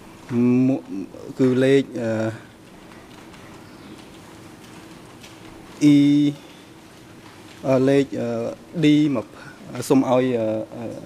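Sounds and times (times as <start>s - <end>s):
faint steady hum: 0.0s - 11.0s
man speaking drawn-out syllables: 5.8s - 6.4s.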